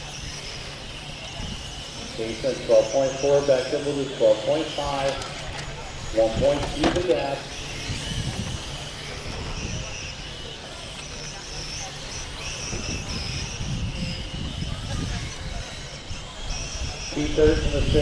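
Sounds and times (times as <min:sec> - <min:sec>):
high whine of electric rc cars: 0:00.0 - 0:18.0.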